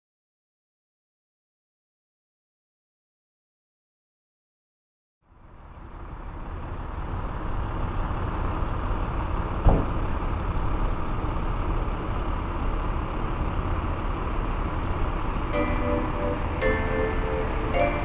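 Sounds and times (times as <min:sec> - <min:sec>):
street traffic rumble: 0:05.3 - 0:18.0
short thump: 0:09.6 - 0:09.9
music: 0:15.5 - 0:18.0.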